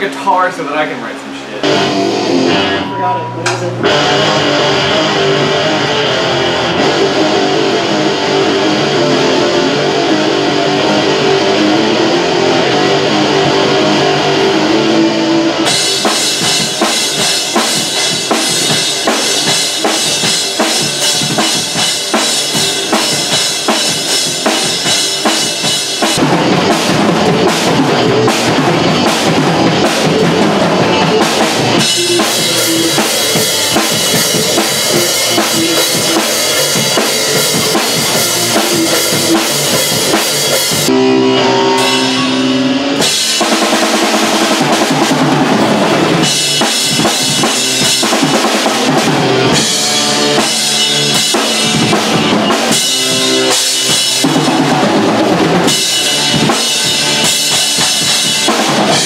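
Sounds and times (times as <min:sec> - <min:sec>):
drum kit playing: 0:00.0 - 0:59.0
electric guitars: 0:00.0 - 0:59.0.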